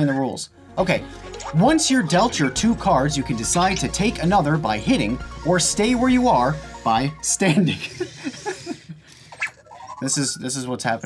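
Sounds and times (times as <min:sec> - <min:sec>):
rising chirp-like tone: 0:09.4 - 0:11.0.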